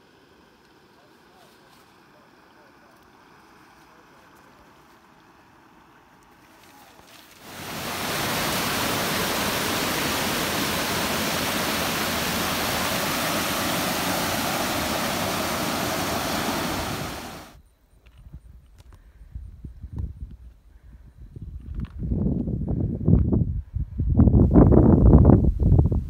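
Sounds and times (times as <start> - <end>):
stream rushing over boulders: 7.3 - 17.6.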